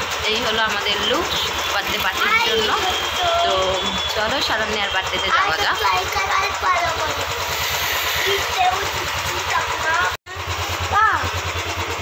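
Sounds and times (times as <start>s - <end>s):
motorcycle engine idling: 0.0s - 12.0s
voices: 0.2s - 10.2s.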